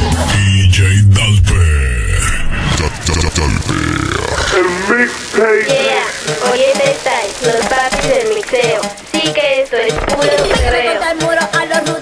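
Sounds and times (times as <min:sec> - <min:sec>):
heavy bass beat: 0:00.0 - 0:04.3
pitch-shifted voice sample: 0:00.3 - 0:04.8.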